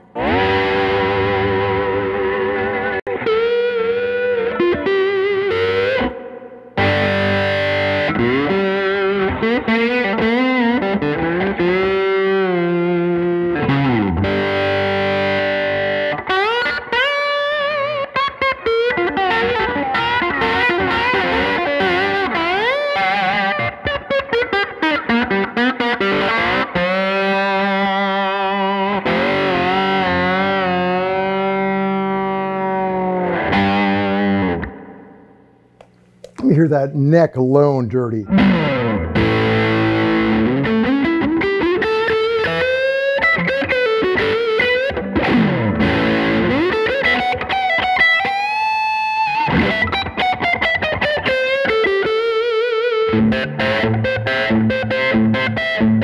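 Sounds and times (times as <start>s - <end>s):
distorted electric guitar lead: 0.0s - 36.8s, 37.9s - 56.0s.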